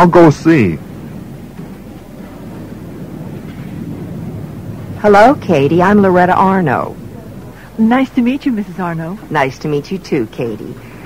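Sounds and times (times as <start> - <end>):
low hum: 0.0 - 11.0
steady hiss: 0.0 - 11.0.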